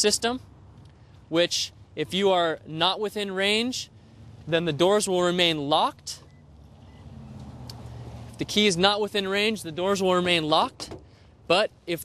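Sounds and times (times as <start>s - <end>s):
low engine hum: 3.3s - 11.5s.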